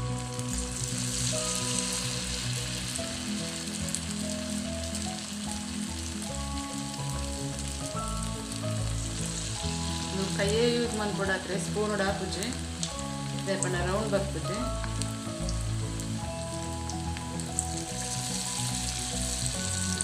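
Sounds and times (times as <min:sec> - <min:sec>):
background music: 0:00.0 - 0:20.0
hot oil sizzling: 0:00.0 - 0:20.0.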